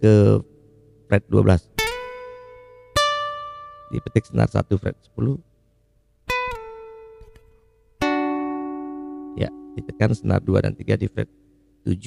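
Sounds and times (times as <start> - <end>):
acoustic guitar notes: 0.0 - 12.0.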